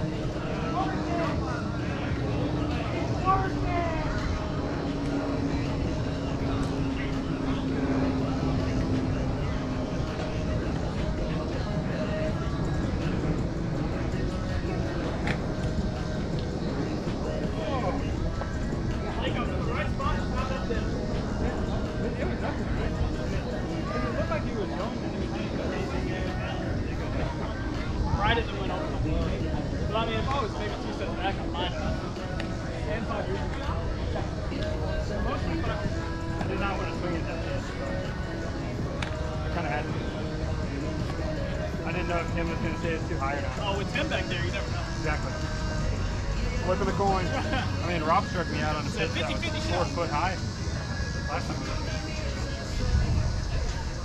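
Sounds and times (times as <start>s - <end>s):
people talking and calling out: 0.0s - 54.0s.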